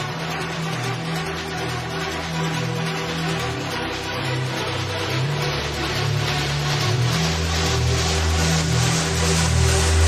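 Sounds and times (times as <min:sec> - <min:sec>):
trance music with synth bass: 0:00.0 - 0:10.0.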